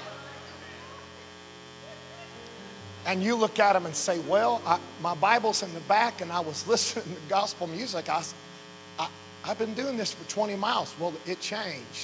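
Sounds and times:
hum of held tones: 0.0s - 12.0s.

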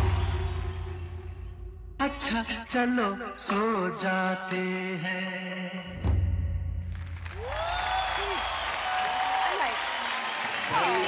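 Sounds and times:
audience applause: 0.0s - 1.2s, 7.0s - 11.0s
people cheering: 0.0s - 1.6s, 7.0s - 11.0s
backing music bass hit: 0.0s - 2.7s.

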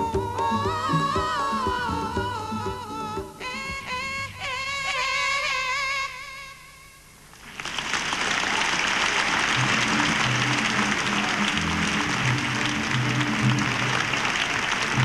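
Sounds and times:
band playing low held notes: 0.0s - 4.6s, 9.6s - 15.0s
audience applauding: 7.4s - 15.0s.

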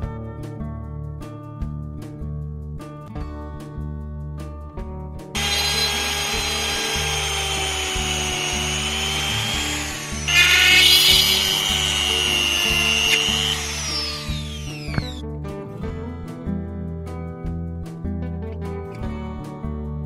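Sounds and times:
rotary tool whining drilling wood: 5.4s - 15.2s.

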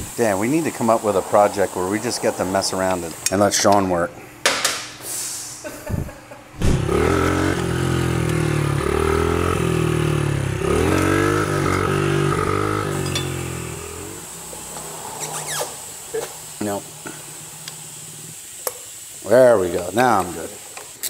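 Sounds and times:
motorcycle engine revving: 6.6s - 18.4s.

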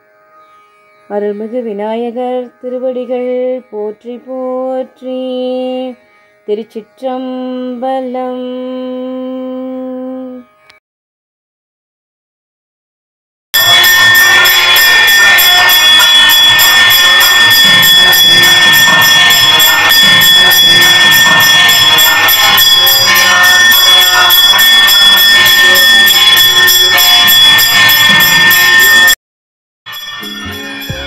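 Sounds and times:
temple bells ringing rapidly: 13.6s - 29.2s, 29.9s - 31.0s.

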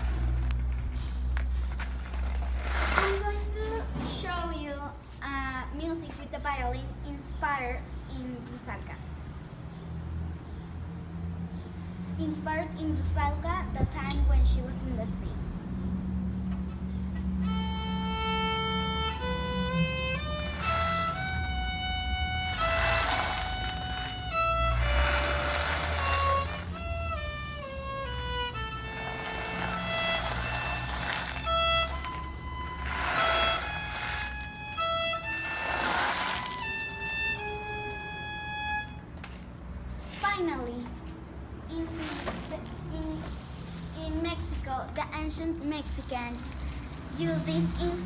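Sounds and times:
solo violin melody: 17.4s - 39.2s
person speaking: 41.7s - 48.0s.

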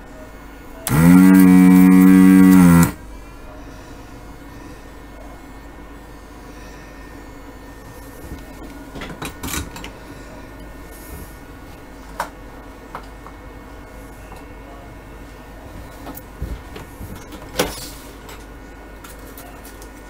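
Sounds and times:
loud machine hum: 0.8s - 3.2s.

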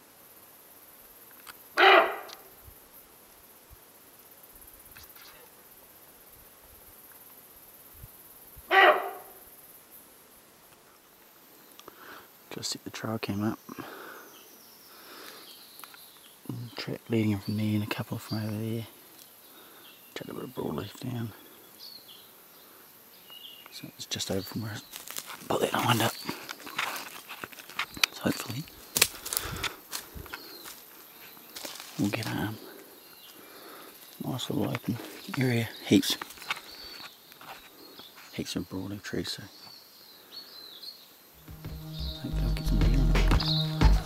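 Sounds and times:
deer alarm bark: 1.8s - 2.5s, 8.7s - 9.4s
footsteps on dry leaves: 24.8s - 32.6s.

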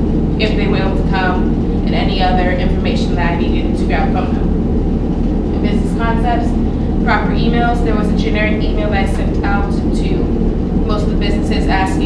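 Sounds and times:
loud low rumble: 0.0s - 12.0s.

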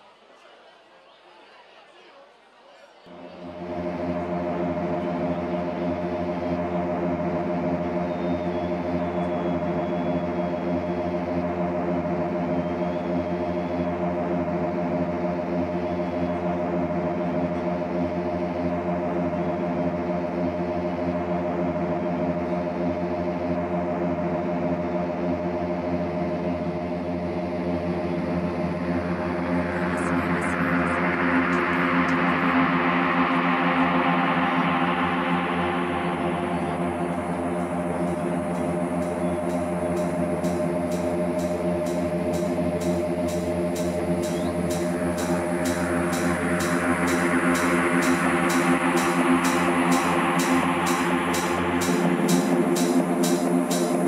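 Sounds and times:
rising noise sweep: 3.1s - 54.0s
synthesizer chord drone: 3.1s - 54.0s.

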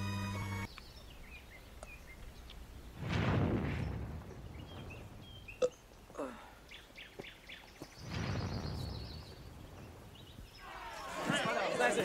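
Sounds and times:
birds chirping: 0.0s - 3.0s, 3.7s - 12.0s
crowd chattering: 10.6s - 12.0s.

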